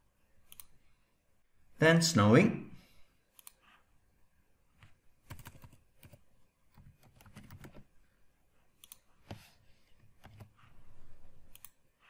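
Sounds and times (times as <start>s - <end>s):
faint keyboard keystrokes: 4.8s - 7.9s, 8.8s - 10.6s.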